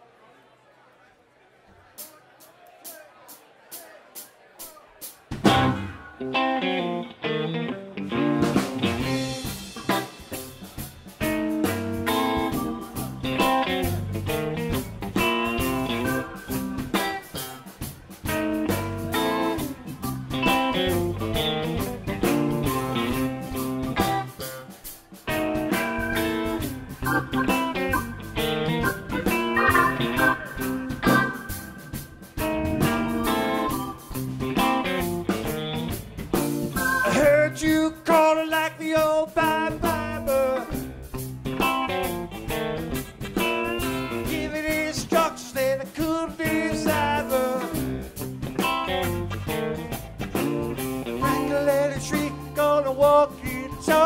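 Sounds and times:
live rock band playing: 0:05.0 - 0:54.0.

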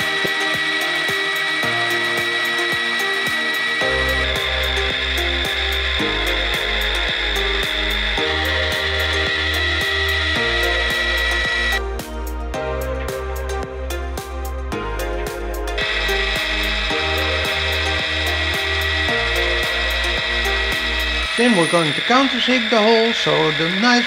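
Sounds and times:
drill whining through metal: 0:00.0 - 0:12.0, 0:15.7 - 0:24.0
background music with beat: 0:00.0 - 0:22.2.

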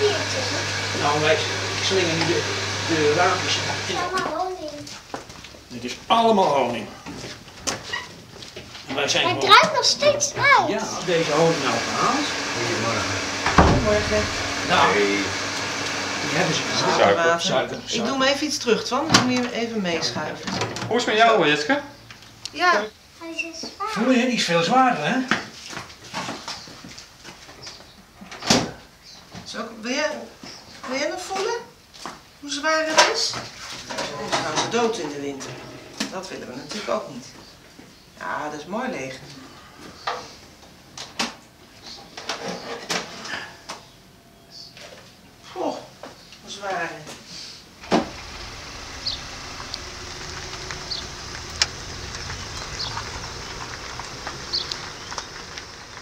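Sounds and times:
sharp knock: 0:13.5 - 0:14.4
steady low rumble: 0:48.0 - 0:56.0.

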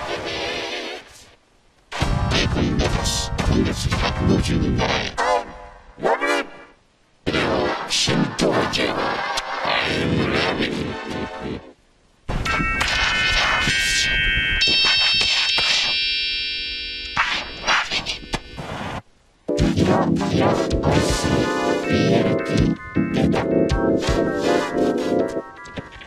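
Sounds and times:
short hits and effects: 0:19.5 - 0:24.7
jingle music with chime chords: 0:20.0 - 0:26.0.

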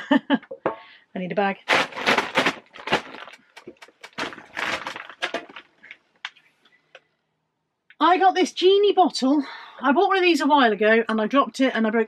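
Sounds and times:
carrier bag rustling and crinkling: 0:01.6 - 0:06.0.

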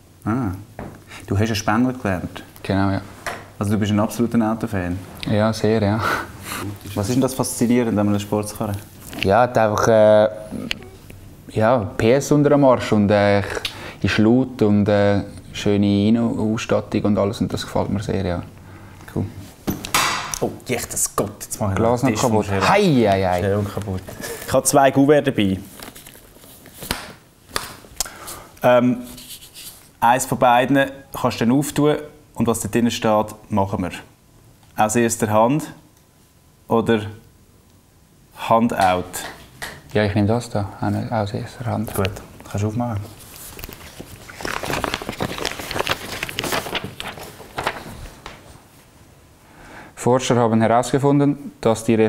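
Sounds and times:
paper rustling and crackling: 0:23.1 - 0:24.6, 0:25.4 - 0:27.8, 0:41.8 - 0:48.6.

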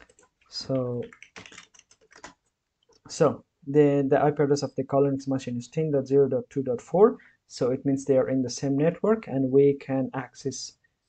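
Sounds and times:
computer keyboard typing: 0:00.0 - 0:02.4.

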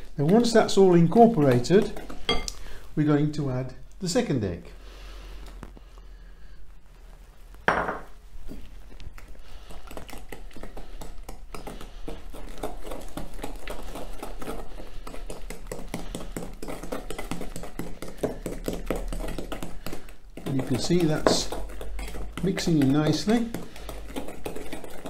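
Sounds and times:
wooden spoon beating in glass bowl: 0:00.2 - 0:02.5, 0:15.2 - 0:25.0.

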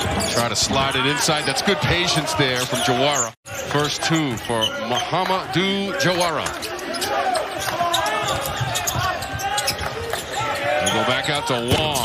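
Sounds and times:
players calling out: 0:00.0 - 0:12.0
sneakers squeaking: 0:00.0 - 0:12.0.

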